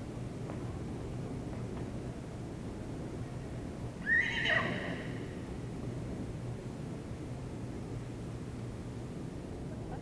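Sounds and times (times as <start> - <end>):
pony whinnying: 4.0 - 5.2.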